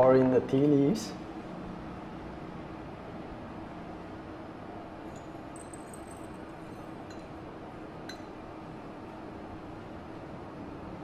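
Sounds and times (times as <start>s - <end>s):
steady low hum: 0.0s - 11.0s
porcelain teaware clinking: 5.0s - 7.4s.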